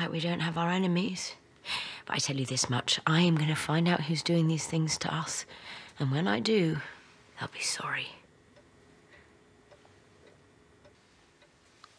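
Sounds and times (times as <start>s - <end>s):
small evenly spaced ticks: 8.4s - 11.9s.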